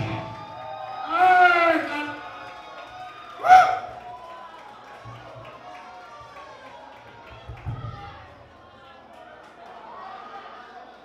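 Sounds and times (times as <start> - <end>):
lingering amplified instrument tones: 0.0 - 0.6
loud whoop: 0.0 - 4.6
low crowd noise: 0.0 - 11.0.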